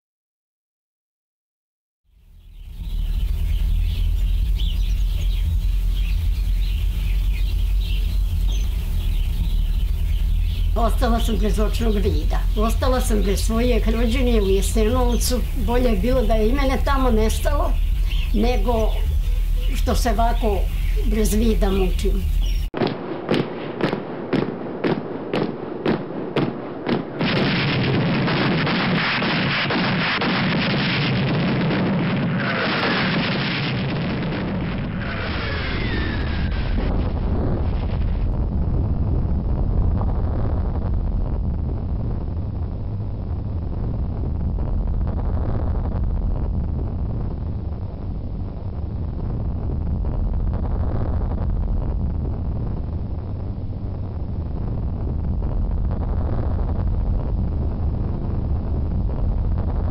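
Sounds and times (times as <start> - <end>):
loud steady low hum: 2.2 - 22.7, 33.8 - 59.9
birds chirping: 2.3 - 22.8
gunfire and artillery fire: 22.8 - 40.7.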